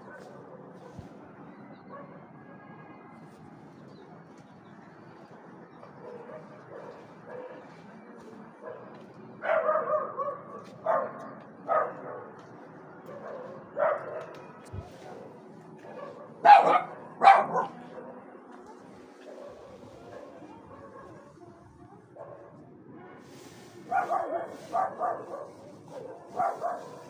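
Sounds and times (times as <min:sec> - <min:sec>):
dog barking: 0:01.9 - 0:02.3, 0:06.0 - 0:07.7, 0:08.6 - 0:12.4, 0:13.0 - 0:18.0, 0:19.2 - 0:21.4, 0:23.9 - 0:27.0.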